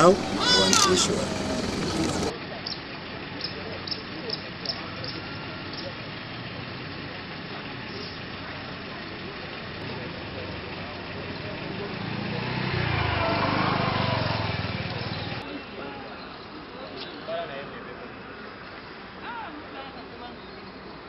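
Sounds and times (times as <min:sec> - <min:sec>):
background voices: 0:00.0 - 0:15.6
small motorcycle passing: 0:00.0 - 0:15.6.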